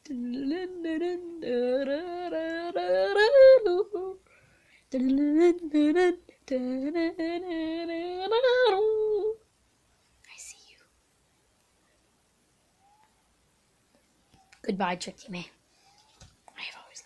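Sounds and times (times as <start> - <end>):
person humming: 0.0 - 4.2, 4.9 - 9.4.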